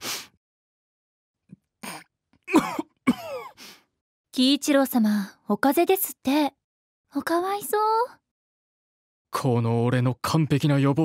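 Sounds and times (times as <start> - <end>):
man coughing: 1.8 - 3.6.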